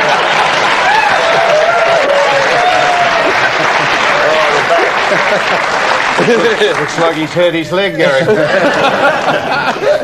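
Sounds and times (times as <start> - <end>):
audience laughing: 0.0 - 0.8, 3.1 - 7.2, 7.8 - 10.0
audience applauding: 0.0 - 10.0.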